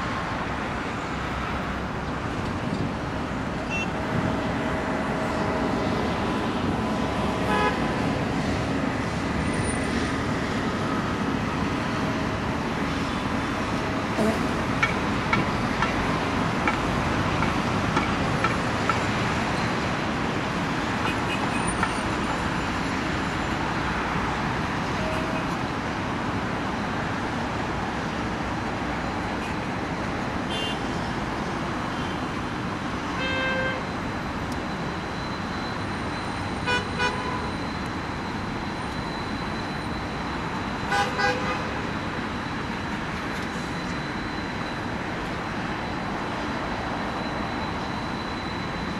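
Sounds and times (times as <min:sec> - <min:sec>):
city traffic hum: 0:00.0 - 0:48.9.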